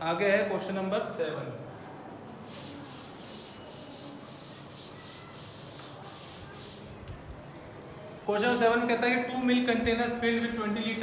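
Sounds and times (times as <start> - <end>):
duster rubbing on chalkboard: 2.4 - 7.0.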